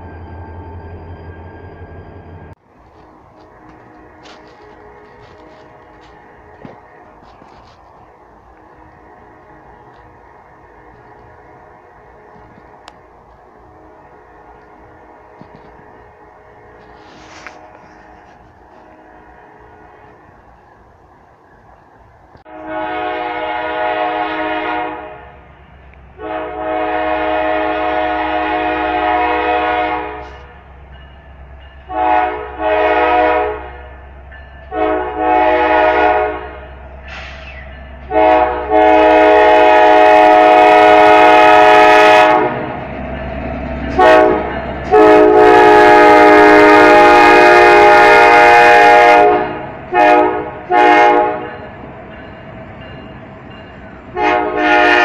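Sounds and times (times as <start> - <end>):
train air horn blasts: 3.4 - 7.8, 13.6 - 20.2, 22.5 - 25.4, 26.2 - 30.6, 31.8 - 34.0, 34.7 - 42.8, 43.8 - 51.6, 54.1 - 55.0.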